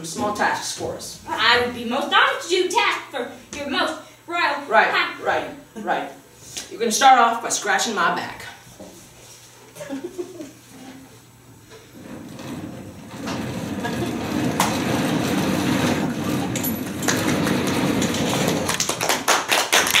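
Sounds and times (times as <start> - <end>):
audience applause: 16.9 - 20.0
sharp nearby hand claps: 18.7 - 20.0.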